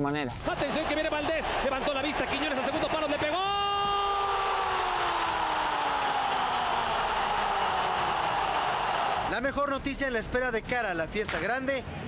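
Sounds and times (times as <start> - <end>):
stadium crowd noise: 0.3 - 12.0.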